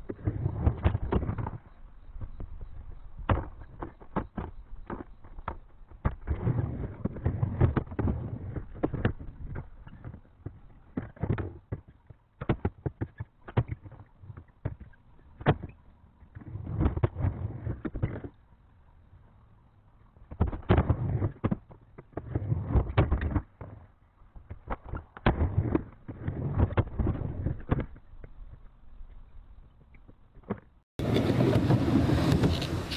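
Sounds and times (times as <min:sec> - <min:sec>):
skateboard wheels rumbling on wood: 0:00.0 - 0:18.5, 0:20.2 - 0:32.9.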